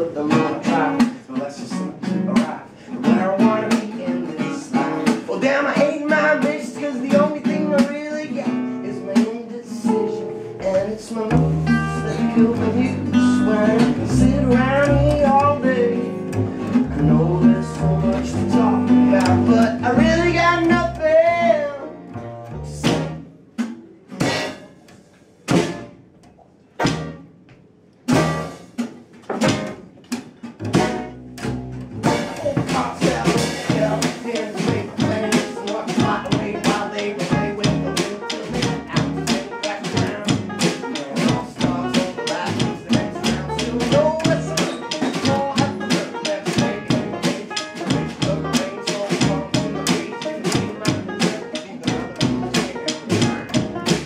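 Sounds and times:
banjo: 0.0 - 26.0, 26.6 - 27.2, 28.0 - 54.0
upright double bass: 0.0 - 26.0, 26.8 - 27.3, 28.0 - 54.0
acoustic guitar: 0.0 - 54.0.

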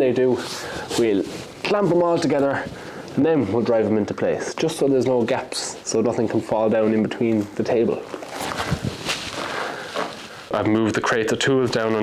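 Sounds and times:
faint steady noise: 0.0 - 12.0.

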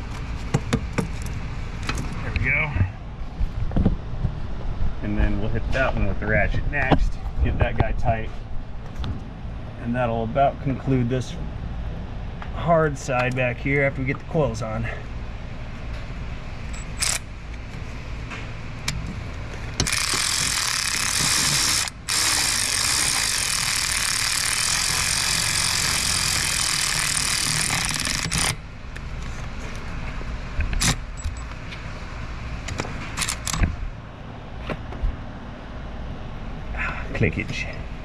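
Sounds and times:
power ratchet whirring: 16.7 - 17.3, 19.7 - 28.6, 33.2 - 33.7
tool and socket clicks: 32.7 - 33.7.

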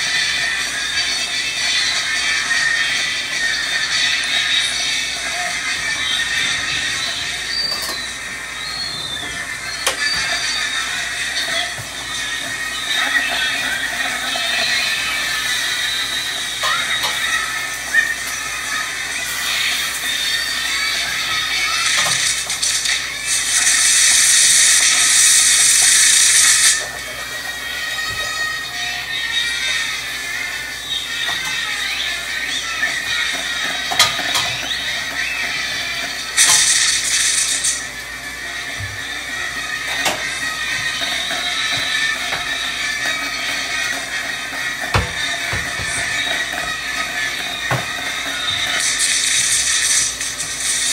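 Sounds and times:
fireworks hissing: 1.8 - 27.0, 36.2 - 39.2, 44.6 - 50.9.

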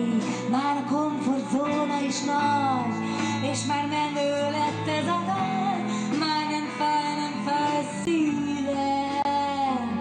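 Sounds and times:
hard rock band playing live: 0.0 - 10.0
woman singing: 0.0 - 10.0.

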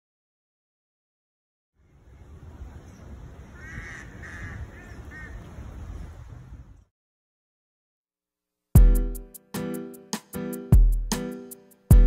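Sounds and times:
bird calling: 1.8 - 6.0.

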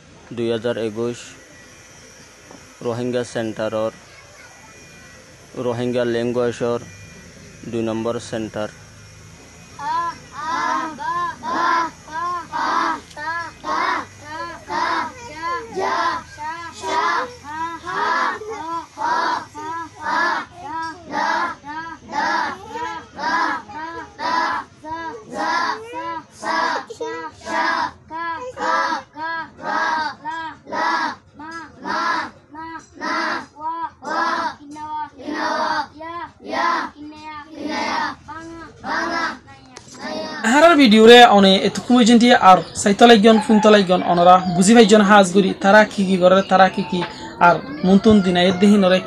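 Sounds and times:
children chanting in sing-song: 9.6 - 40.6, 41.7 - 49.0.

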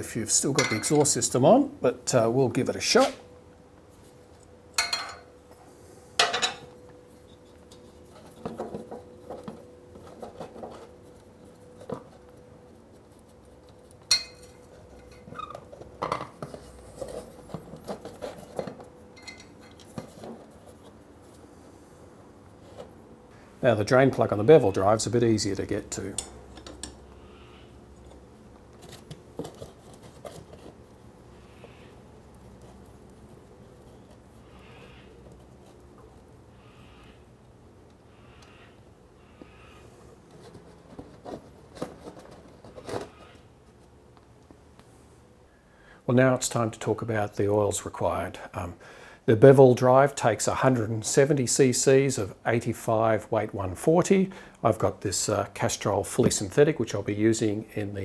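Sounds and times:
quiet handling sounds: 0.0 - 38.5, 39.3 - 45.4.

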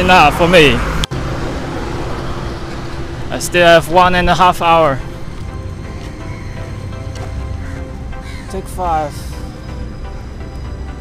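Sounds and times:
roadside traffic rushing: 0.0 - 11.0.

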